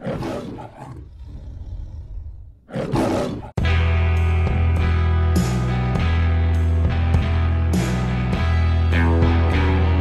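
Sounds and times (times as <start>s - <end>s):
lion roaring: 0.0s - 3.6s
music with heavy bass line: 3.6s - 10.0s.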